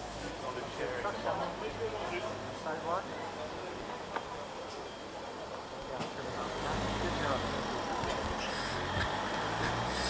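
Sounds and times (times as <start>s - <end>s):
vehicle engine rumble: 3.2s - 10.0s.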